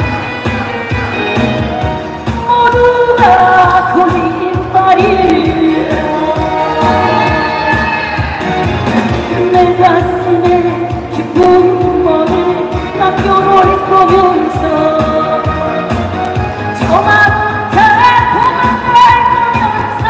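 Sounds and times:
amplified accompaniment with steady beat: 0:00.0 - 0:20.0
woman singing through a pa: 0:02.4 - 0:08.4, 0:09.3 - 0:16.0, 0:16.8 - 0:20.0.

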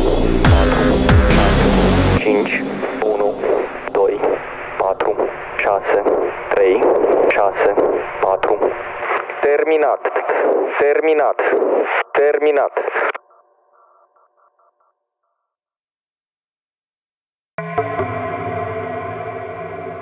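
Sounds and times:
radio-filtered voice sample: 0:00.0 - 0:14.8
faint pulsing tones: 0:02.6 - 0:09.0.

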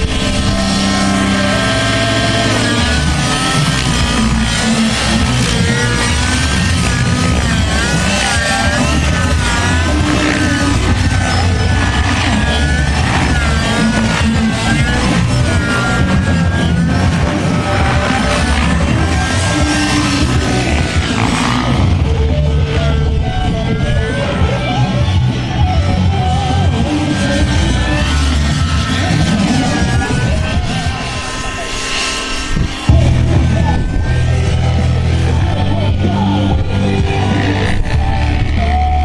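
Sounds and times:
loud rock music: 0:00.0 - 0:39.0
model helicopter engine and rotor: 0:00.0 - 0:39.0.

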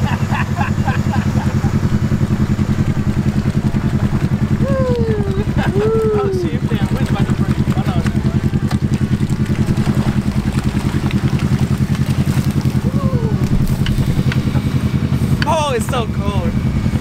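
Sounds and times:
atv engine running at low revs: 0:00.0 - 0:17.0.

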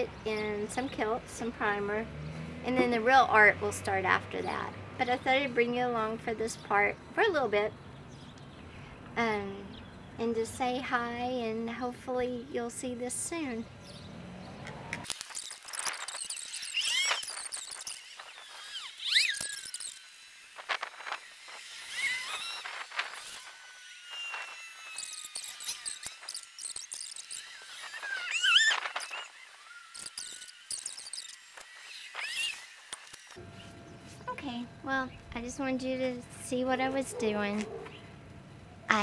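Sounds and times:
birds calling: 0:37.0 - 0:39.0.

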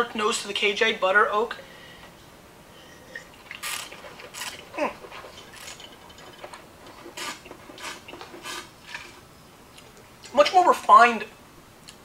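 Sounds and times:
person slurping wine: 0:02.8 - 0:09.2.

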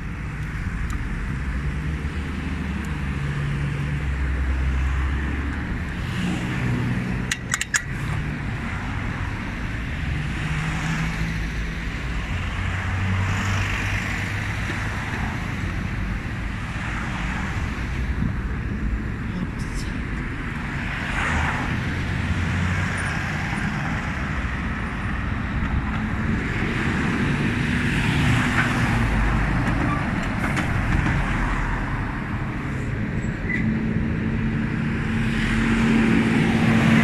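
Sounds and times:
cars driving past: 0:00.0 - 0:37.0.

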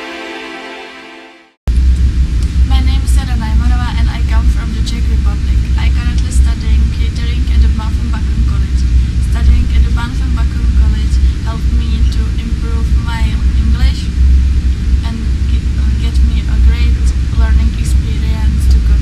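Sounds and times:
loud steady low hum: 0:00.0 - 0:19.0
young woman speaking: 0:02.4 - 0:14.2, 0:15.0 - 0:19.0.

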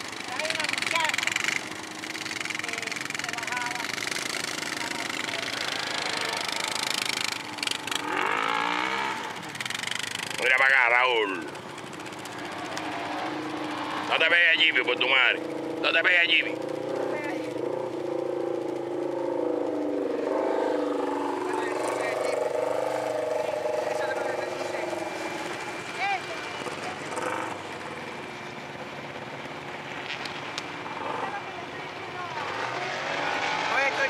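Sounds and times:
vehicle engine at low revs: 0:00.0 - 0:34.0
faint voices: 0:31.0 - 0:34.0.

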